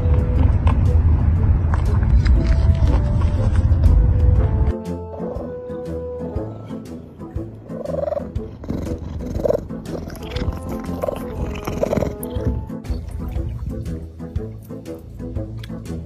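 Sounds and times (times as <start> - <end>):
background music with bass: 0.0 - 16.0
animal calls: 7.7 - 12.6.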